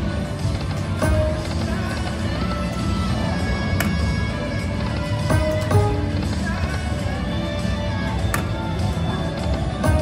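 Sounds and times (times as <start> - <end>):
low casino din: 0.0 - 10.0
slot machine game music: 0.9 - 2.2, 5.2 - 6.6, 8.4 - 10.0.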